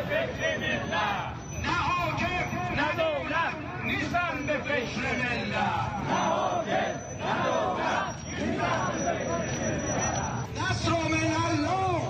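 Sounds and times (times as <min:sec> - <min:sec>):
crowd of men chanting: 0:00.0 - 0:01.4, 0:03.3 - 0:10.5.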